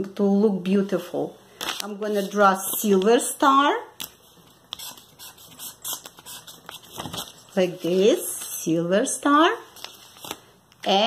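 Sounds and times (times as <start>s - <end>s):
marker scratching on paper: 4.7s - 7.2s.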